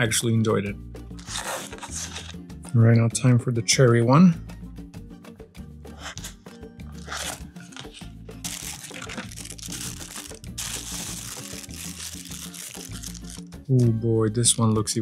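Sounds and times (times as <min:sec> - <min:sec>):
background music: 0:00.0 - 0:15.0
paper and plastic wrap crinkling: 0:01.2 - 0:02.4, 0:07.0 - 0:13.4.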